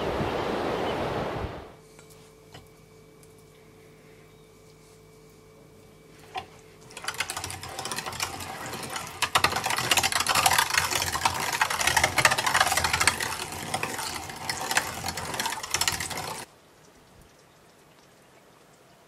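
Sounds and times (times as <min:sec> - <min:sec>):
hand-cranked meat grinder rattling: 0:06.3 - 0:16.5.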